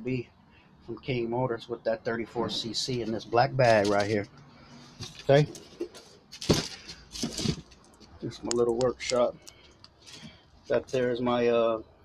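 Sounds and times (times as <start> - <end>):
handling clatter and rustling: 3.6 - 4.2, 4.9 - 11.1.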